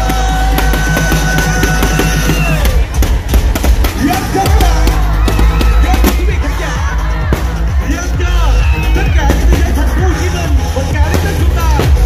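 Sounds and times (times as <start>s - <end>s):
fireworks cracking and popping: 0.0s - 6.5s
loud music with heavy bass: 0.0s - 12.0s.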